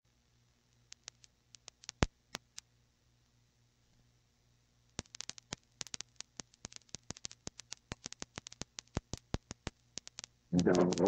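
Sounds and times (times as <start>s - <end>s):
faint low hum: 0.1s - 11.0s
tape crackle: 0.7s - 2.7s, 4.9s - 11.0s.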